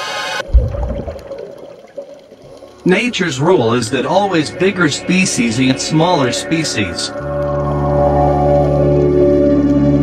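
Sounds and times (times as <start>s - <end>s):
deep boom with watery rush: 0.4s - 2.1s.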